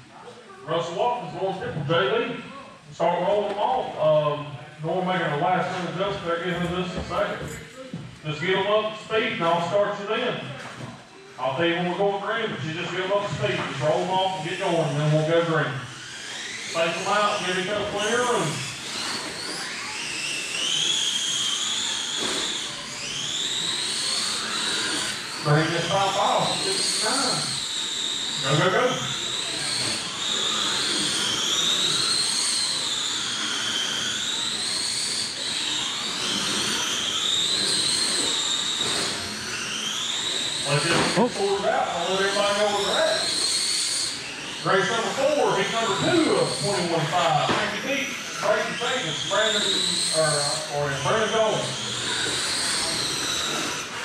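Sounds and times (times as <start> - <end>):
electric motors whining: 0.0 - 54.0
voices: 25.4 - 27.6, 40.6 - 43.3, 44.6 - 51.9.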